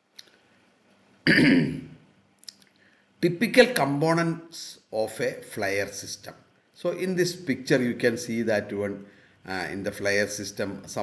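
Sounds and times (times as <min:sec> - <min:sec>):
man clearing his throat: 0:01.2 - 0:01.9.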